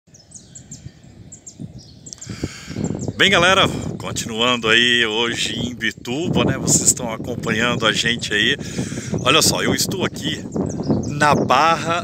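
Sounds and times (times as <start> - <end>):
small birds chirping: 0.1 - 12.0.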